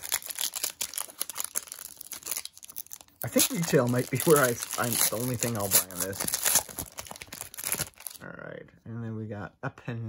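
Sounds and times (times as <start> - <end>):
foil wrapper crinkling and tearing: 0.0 - 8.2.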